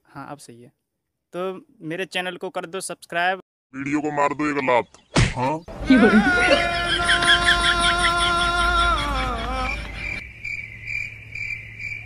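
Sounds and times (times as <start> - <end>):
cricket chirping: 9.4 - 12.0.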